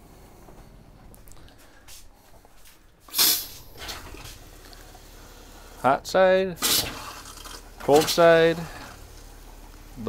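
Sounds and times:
faucet hissing spurt: 3.1s - 3.8s, 6.6s - 7.6s.

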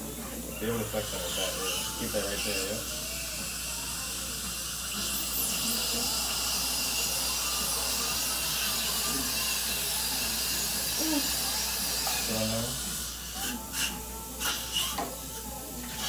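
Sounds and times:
dental handpiece and suction hiss: 0.7s - 15.1s.

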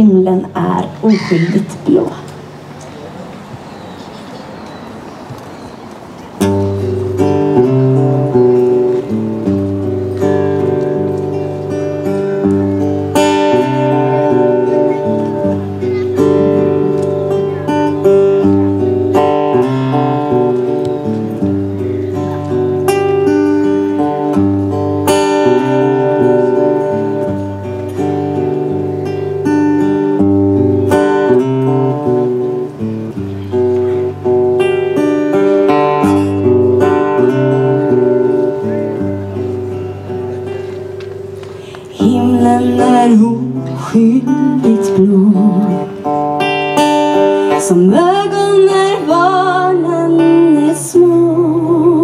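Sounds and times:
acoustic guitar playing chords: 0.0s - 3.7s, 4.9s - 52.0s
woman singing: 41.9s - 45.9s, 47.5s - 52.0s.

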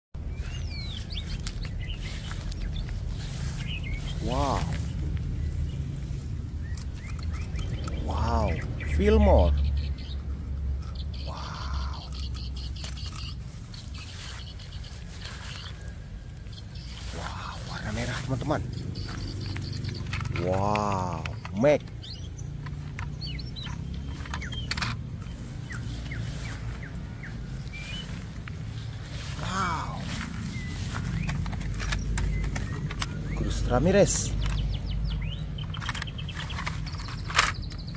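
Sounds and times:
leaves rustling: 0.2s - 9.3s, 11.2s - 21.3s, 24.0s - 33.4s
low rumble: 0.2s - 12.2s
low steady rumble: 0.2s - 33.5s
small birds chirping: 0.2s - 37.9s.

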